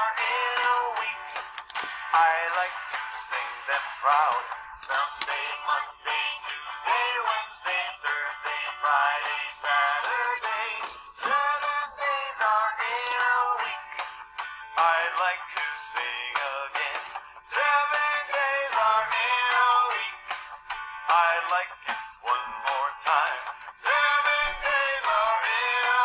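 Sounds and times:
children's song with voices singing: 0:00.0 - 0:26.0.

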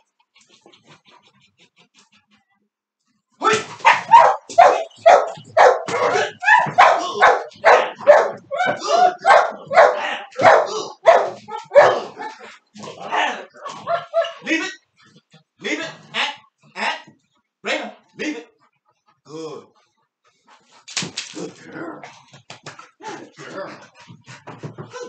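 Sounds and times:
dog barking loudly: 0:03.8 - 0:12.5, 0:13.1 - 0:14.6.

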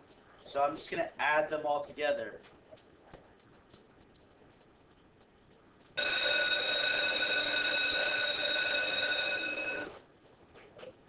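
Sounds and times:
electronic bell tone: 0:06.0 - 0:10.0.

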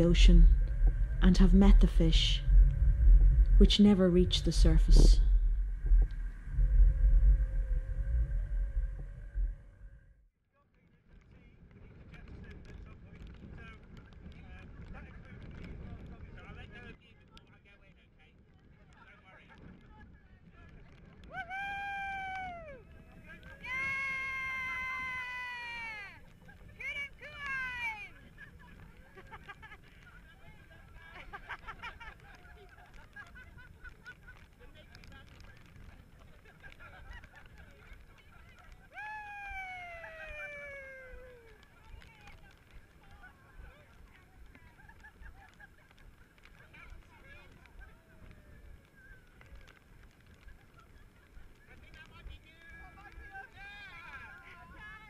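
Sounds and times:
low rumble: 0:00.0 - 0:10.3.

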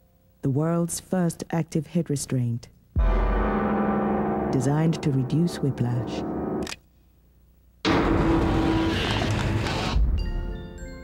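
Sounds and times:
heavy low thump: 0:03.0 - 0:04.5
car crash: 0:07.9 - 0:10.2.

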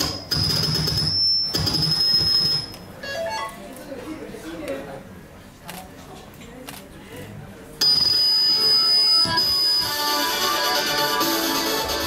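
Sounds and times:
backing-track music over loudspeakers: 0:09.2 - 0:12.0.

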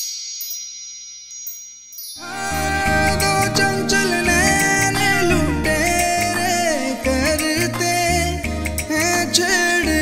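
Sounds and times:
chimes ringing: 0:00.0 - 0:07.0
background music: 0:02.2 - 0:10.0.

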